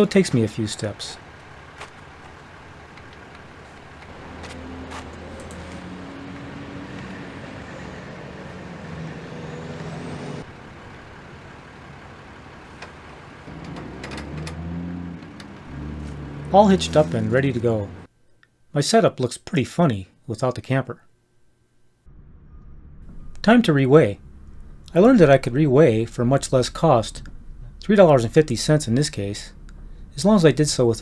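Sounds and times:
vehicle engines humming: 0.0s - 18.1s, 22.1s - 31.0s.

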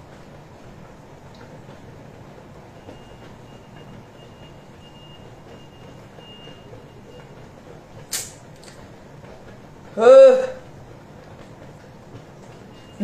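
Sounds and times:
low background hum: 0.0s - 13.0s.

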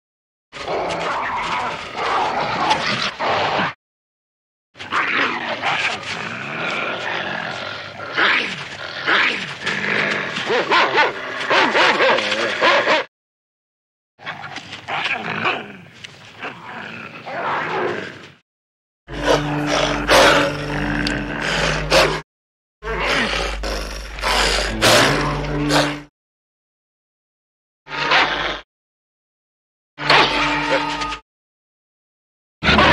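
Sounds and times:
large animal growling: 0.6s - 3.8s, 5.0s - 13.1s, 14.9s - 18.4s, 19.1s - 22.2s, 22.8s - 26.1s, 32.6s - 32.9s
wolf snarling: 5.1s - 13.1s, 19.1s - 22.2s, 22.9s - 26.1s, 32.6s - 32.9s.

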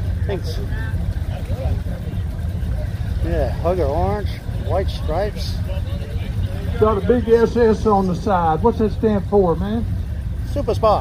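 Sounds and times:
car engine idling: 0.0s - 11.0s
faint voices: 0.0s - 11.0s.

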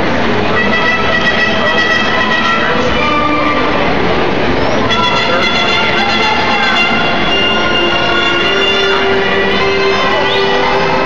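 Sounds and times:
murmur of large crowd: 0.0s - 11.0s
live music with held chords: 0.1s - 11.0s.

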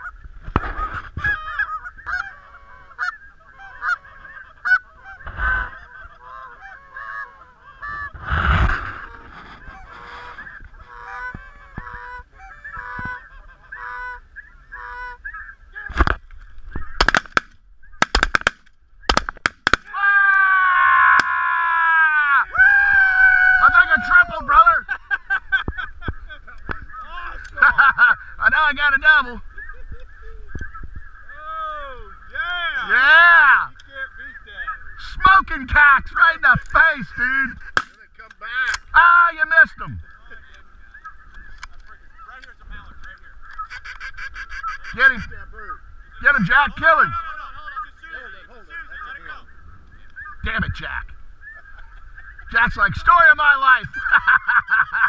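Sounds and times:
geese honking: 0.0s - 16.1s, 22.2s - 37.8s, 38.4s - 55.0s
shotgun shots: 17.0s - 19.9s.

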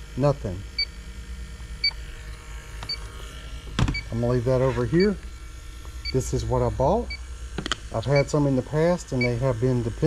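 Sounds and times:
leak detector short high beeps: 9.2s - 9.4s.

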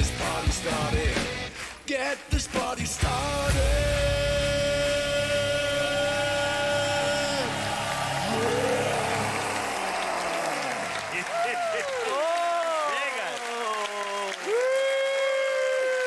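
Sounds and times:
pop-rock song with sung note: 0.0s - 7.7s
audience applauding and cheering: 0.0s - 16.0s
whooping voices: 4.6s - 16.0s.

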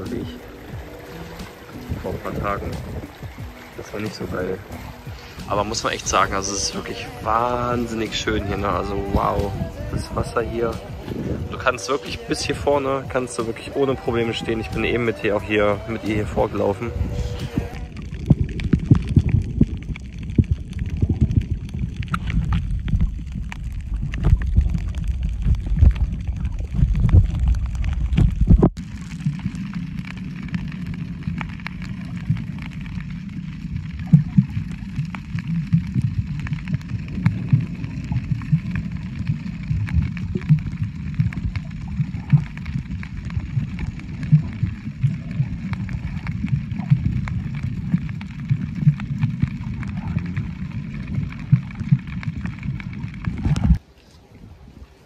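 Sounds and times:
underwater clicks and crackles: 0.0s - 54.8s
underwater rumble of moving water: 0.0s - 55.0s.

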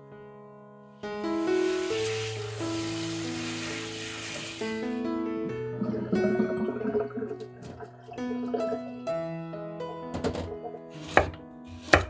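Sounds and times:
soft background music: 0.0s - 12.0s
knife chopping on wooden board: 11.0s - 12.0s.

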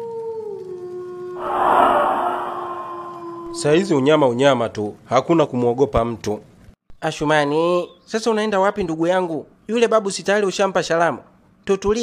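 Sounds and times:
loud whooshing burst: 1.4s - 3.8s.

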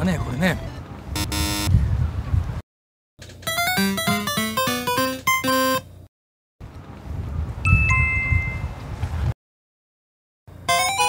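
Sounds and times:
harsh wrong answer buzzer: 1.2s - 1.7s, 3.5s - 5.8s.

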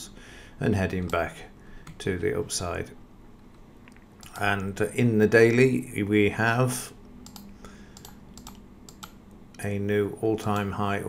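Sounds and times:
mouse and keyboard clicking: 7.2s - 9.6s.

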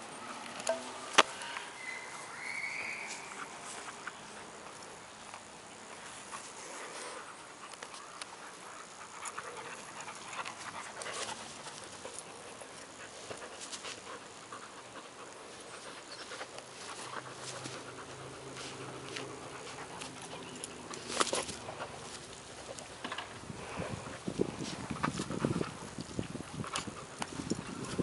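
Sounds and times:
dogs scuffling: 3.0s - 28.0s
dogs panting: 3.3s - 28.0s.

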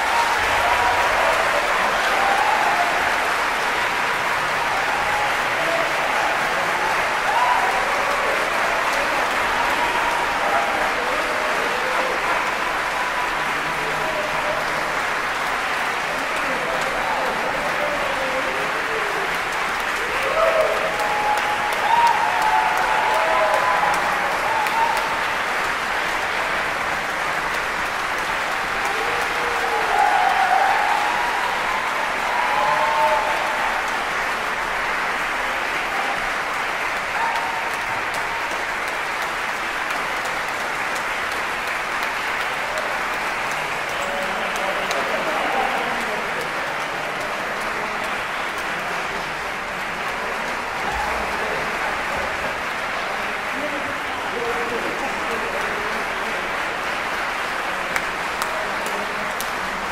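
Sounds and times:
audience applauding: 0.0s - 59.9s.

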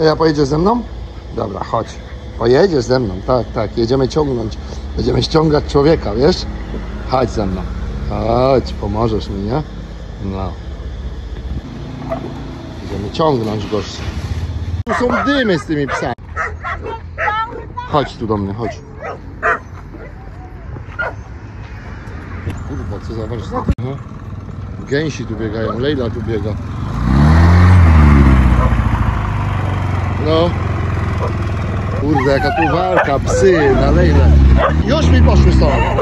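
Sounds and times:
engine hum: 0.0s - 36.0s.

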